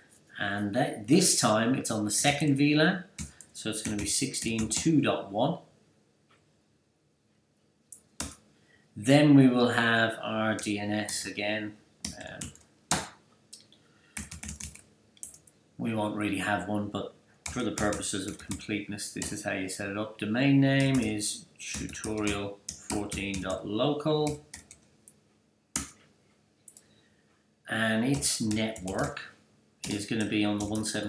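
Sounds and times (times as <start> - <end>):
computer keyboard keystrokes: 14.2 - 15.5, 17.4 - 18.6, 24.2 - 24.9, 25.8 - 26.0.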